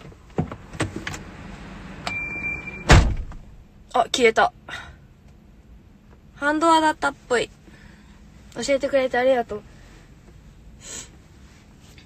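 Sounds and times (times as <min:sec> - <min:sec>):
high warning beep: 0:02.0 - 0:02.9
loud thump: 0:02.8 - 0:03.6.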